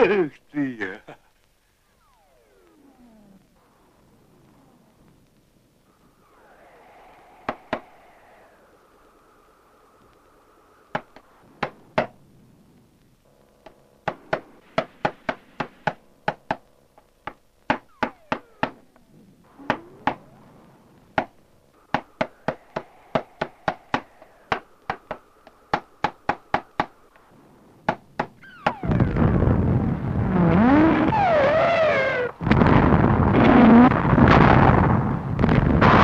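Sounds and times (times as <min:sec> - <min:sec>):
loud rushing din with whistles: 0:05.9 - 0:11.4, 0:21.7 - 0:27.3, 0:28.4 - 0:36.0.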